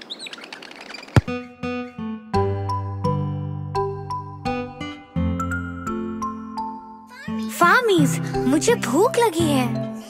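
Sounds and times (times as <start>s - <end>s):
birds chirping: 0.0s - 2.0s.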